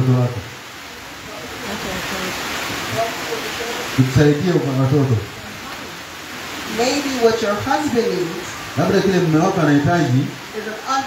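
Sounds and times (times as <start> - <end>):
steady hiss: 0.0 - 11.0
faint voices: 0.9 - 9.6.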